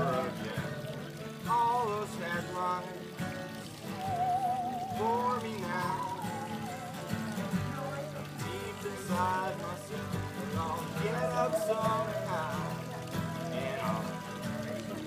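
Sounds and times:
strummed acoustic guitars: 0:00.0 - 0:15.0.

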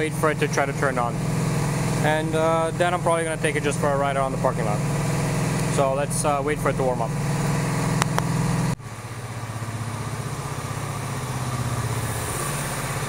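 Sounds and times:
motorcycle engine idling: 0:00.0 - 0:12.0
small click: 0:08.0 - 0:08.3.

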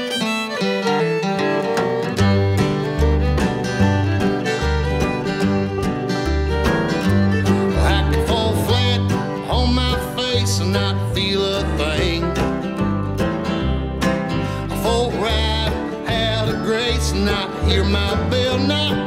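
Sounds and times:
acoustic guitar picking: 0:00.0 - 0:19.0
fiddle with vibrato: 0:00.0 - 0:19.0
mandolin picking: 0:00.0 - 0:19.0
upright bass: 0:01.1 - 0:19.0.

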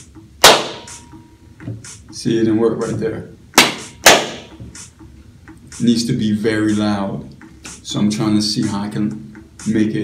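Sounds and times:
sharp hand clap: 0:00.4 - 0:01.0, 0:03.6 - 0:04.5.

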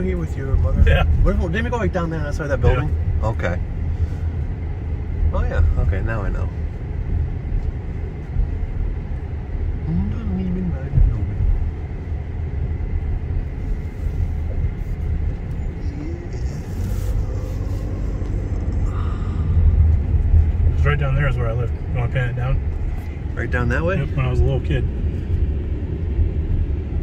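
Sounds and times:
car engine and tyres rumbling: 0:00.0 - 0:27.0.

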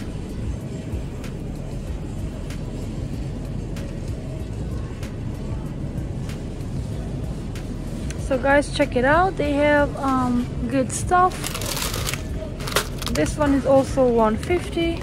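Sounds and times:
faint background music: 0:00.0 - 0:15.0
store ambience rumble: 0:00.0 - 0:15.0.

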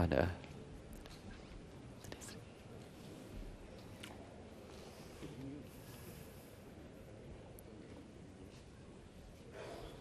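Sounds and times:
soft indistinct murmuring: 0:00.0 - 0:10.0.

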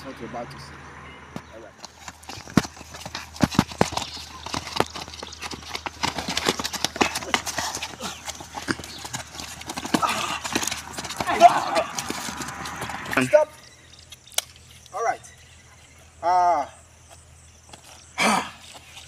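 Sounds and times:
feet shuffling on wet concrete: 0:01.9 - 0:13.0.

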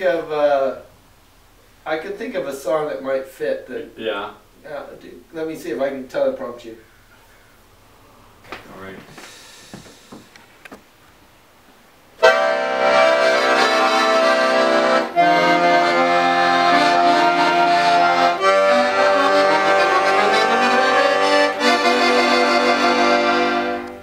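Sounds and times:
accordion playing chords: 0:12.2 - 0:24.0.

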